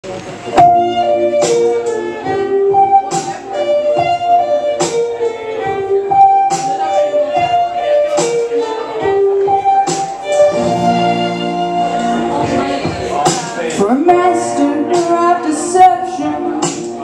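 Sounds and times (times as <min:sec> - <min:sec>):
percussive backing beat: 0:00.0 - 0:17.0
violin slow melody: 0:00.4 - 0:13.2.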